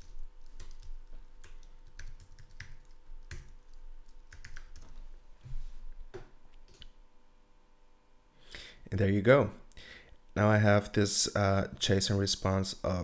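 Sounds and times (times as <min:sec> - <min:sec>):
computer keyboard typing: 0:00.0 - 0:04.9.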